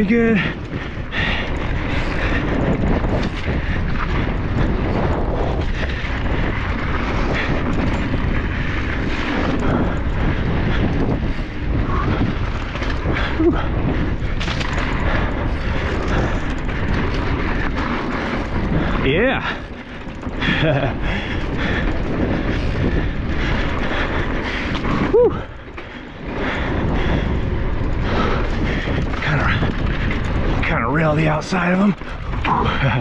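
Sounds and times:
bike clicks and rattles: 0.0s - 33.0s
tyres rolling on dirt: 0.0s - 33.0s
wind rushing over microphone: 0.0s - 33.0s.

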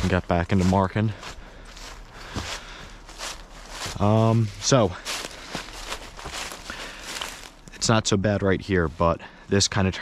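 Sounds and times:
footsteps in dry leaves: 0.0s - 7.7s.

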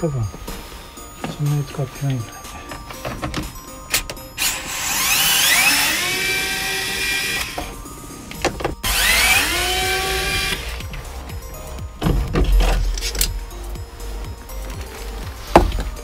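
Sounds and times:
power screwdriver motor whine: 4.4s - 7.8s, 8.8s - 10.8s.

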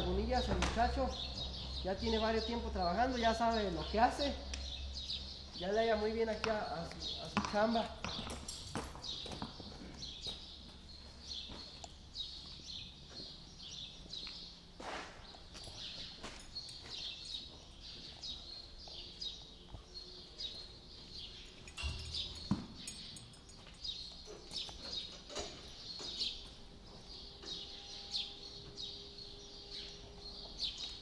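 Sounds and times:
small birds chirping: 0.0s - 31.0s
horse hooves and tack knocks: 6.3s - 10.8s, 21.6s - 26.6s.

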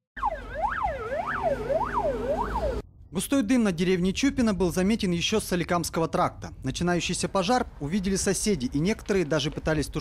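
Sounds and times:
fire engine siren wailing: 0.2s - 2.8s.

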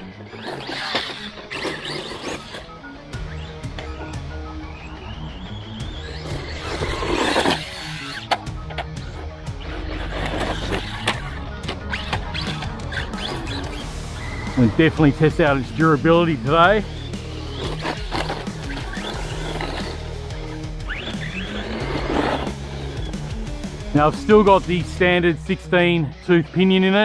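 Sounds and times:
rc truck motor whine: 0.0s - 24.0s
background music with bass: 0.0s - 27.0s.

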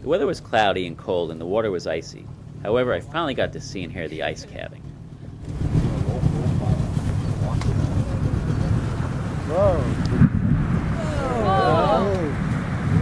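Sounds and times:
low rumble: 2.1s - 13.0s
wind buffeting microphone: 2.3s - 13.0s
sharp crack: 5.4s - 11.0s
person calling out: 11.0s - 12.4s.

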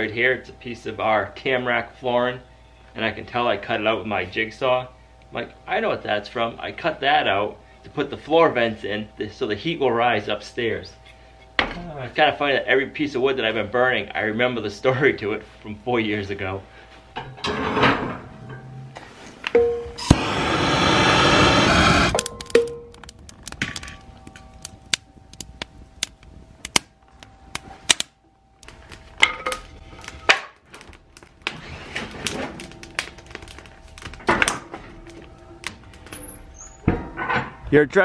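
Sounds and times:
fire crackling in stove: 0.0s - 37.6s.

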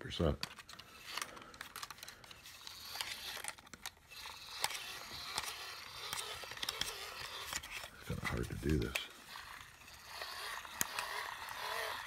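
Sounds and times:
hand crank gear whir with clicks: 0.4s - 12.0s.

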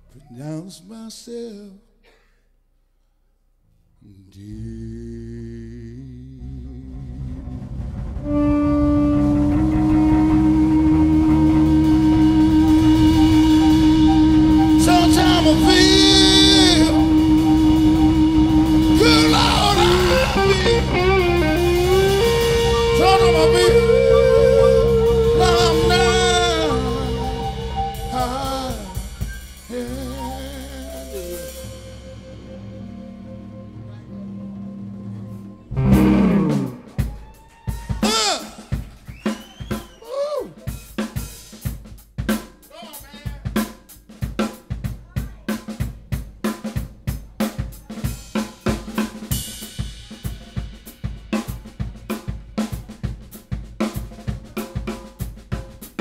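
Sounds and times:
live blues band: 6.9s - 42.6s, 43.4s - 56.0s
drum or cymbal strikes: 7.8s - 33.8s, 35.7s - 40.0s, 40.6s - 56.0s
held bending lead guitar note: 8.2s - 37.1s.

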